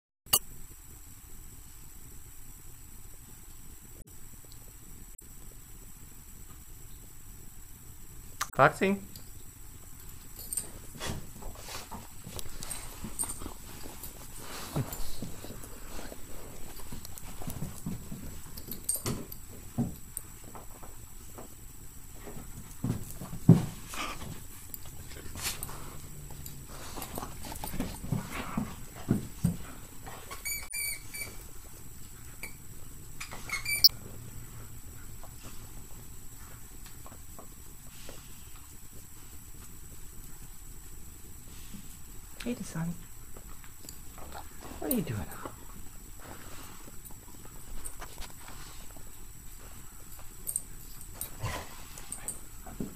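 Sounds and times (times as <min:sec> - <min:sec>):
dog paws scuffling on carpet: 0:09.9 - 0:30.6, 0:33.2 - 0:52.9
squeaky toy squeaks: 0:33.5 - 0:33.9.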